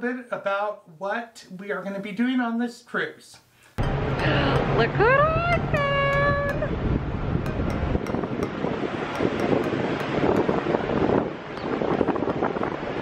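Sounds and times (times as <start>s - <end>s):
wind buffeting microphone: 3.9s - 13.0s.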